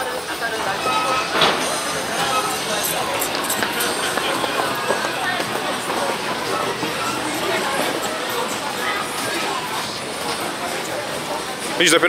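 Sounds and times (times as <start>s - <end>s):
hubbub of people talking: 0.0s - 12.0s.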